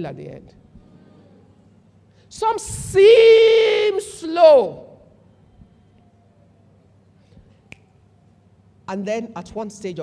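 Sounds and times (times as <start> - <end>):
finger snap: 7.4 - 8.0.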